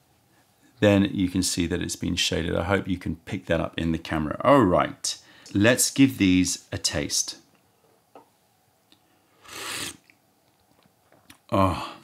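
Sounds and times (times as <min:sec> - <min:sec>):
person slurping tea: 0:09.4 - 0:10.1.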